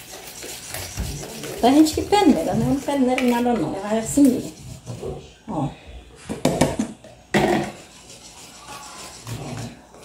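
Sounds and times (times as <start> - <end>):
tub and whisk knocking bowl: 6.3 - 7.8.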